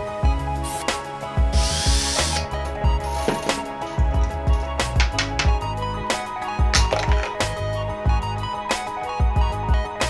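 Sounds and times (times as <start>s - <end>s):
background music with steady beat: 0.0s - 10.0s
small electric drill whirring: 1.5s - 2.5s.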